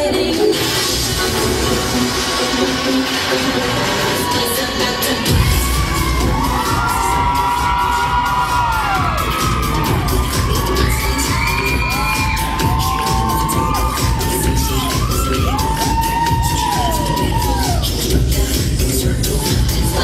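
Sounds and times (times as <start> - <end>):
dance music with steady beat: 0.0 - 20.0
audience cheering and whooping: 3.6 - 18.2, 19.1 - 20.0.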